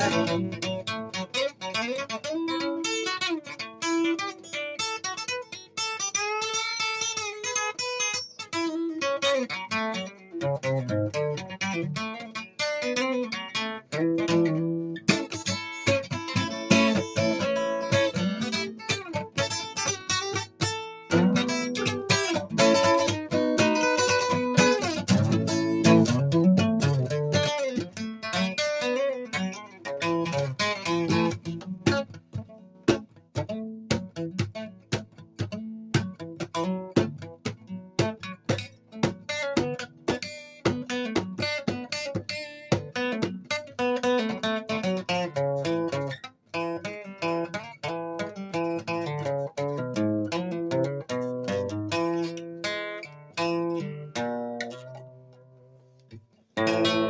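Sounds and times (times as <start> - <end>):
acoustic guitar picking and strumming: 0.0 - 57.0.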